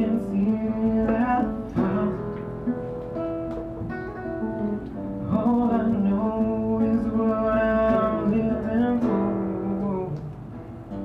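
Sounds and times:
acoustic guitar: 0.0 - 11.0
man singing long notes: 5.2 - 10.3.

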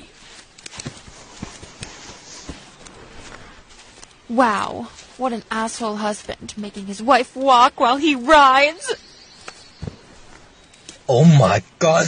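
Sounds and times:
donkey hooves clopping: 0.0 - 11.1
light steady hiss: 0.0 - 12.0.

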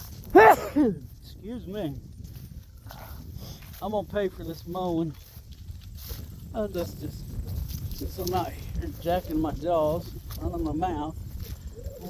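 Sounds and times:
wind buffeting microphone: 0.0 - 12.0
man talking: 1.2 - 2.0, 3.8 - 5.4, 6.5 - 7.3, 8.0 - 11.2.

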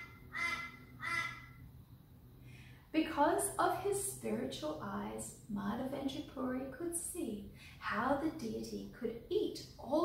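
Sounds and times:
bird calling: 0.0 - 1.6.

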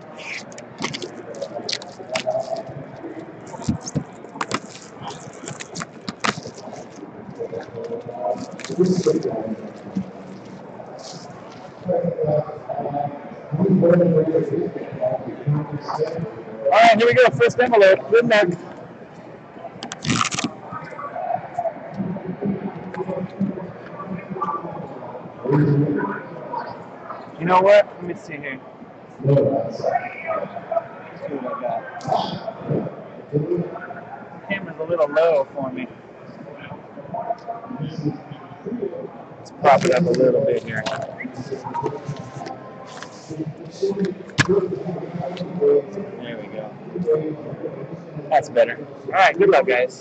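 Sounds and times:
paper crackling against tabletop: 3.5 - 7.0
paper envelope rustling: 3.5 - 7.0.

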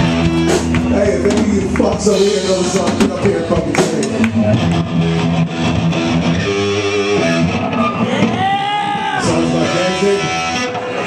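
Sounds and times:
bass guitar: 0.0 - 11.0
electric guitar through amplifier: 0.0 - 11.0.

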